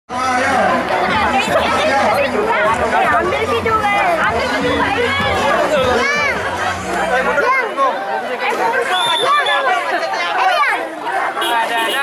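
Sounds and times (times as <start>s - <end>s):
crowd chatter: 0.1s - 12.0s.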